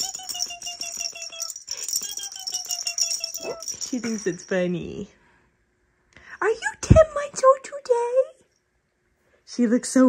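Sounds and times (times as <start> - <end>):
toy rattle clicking: 0.0 - 4.5.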